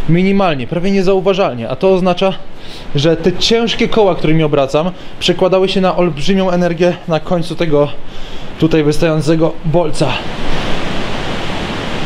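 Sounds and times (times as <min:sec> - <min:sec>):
steady rushing noise: 0:00.0 - 0:12.0.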